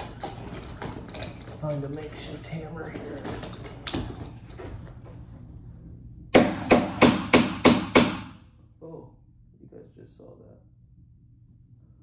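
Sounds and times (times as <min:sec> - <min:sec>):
hammer banging on a door: 0:06.3 - 0:08.4.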